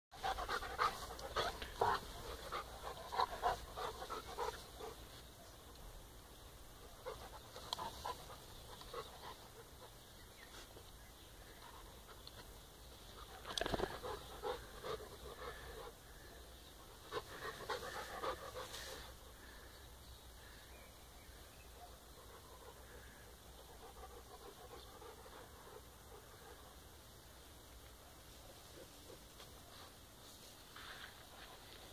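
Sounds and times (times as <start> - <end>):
puppies panting: 0.1 - 5.2, 6.9 - 10.8, 11.4 - 19.6, 22.2 - 26.8.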